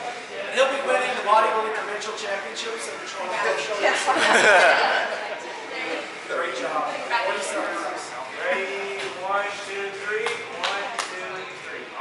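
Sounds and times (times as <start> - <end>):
laughter: 3.9 - 5.4.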